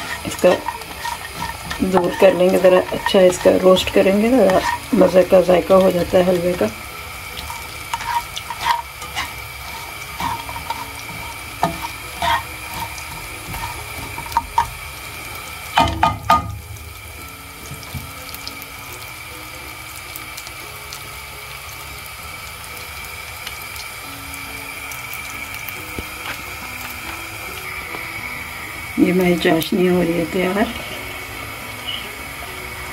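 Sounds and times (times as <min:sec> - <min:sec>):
spatula scraping and knocking pan: 0:00.0 - 0:17.0, 0:17.6 - 0:18.4
nuts sizzling in oil: 0:00.0 - 0:32.9.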